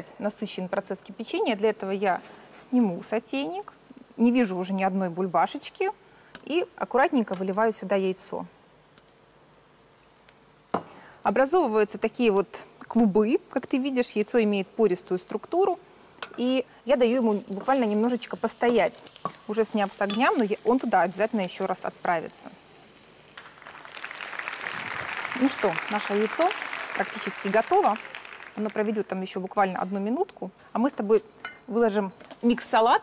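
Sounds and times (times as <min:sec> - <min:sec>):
faint steady hiss: 0:00.0 - 0:33.0.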